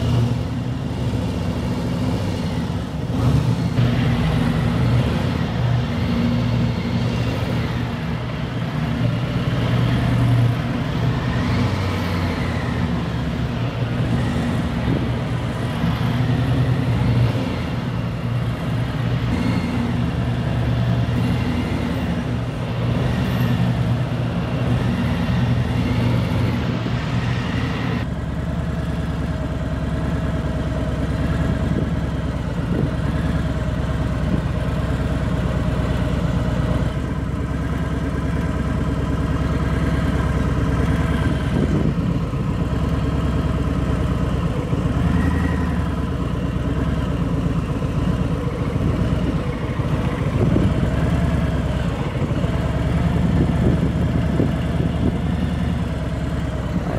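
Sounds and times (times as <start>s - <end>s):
motorcycle engine at low revs: 0.0s - 56.9s.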